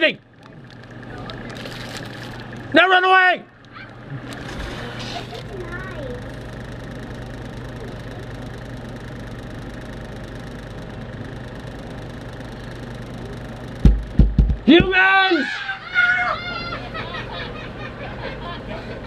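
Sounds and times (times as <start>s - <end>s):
outdoor background noise: 0.0s - 19.0s
steady low hum: 0.0s - 19.0s
faint children's voices: 3.7s - 6.5s, 7.5s - 8.6s
low thump: 13.8s - 15.0s.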